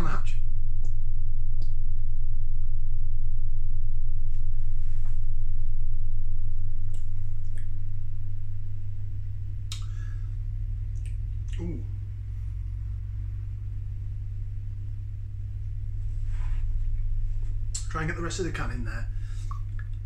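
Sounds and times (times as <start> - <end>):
washing machine and dryer hum: 6.5 - 20.0.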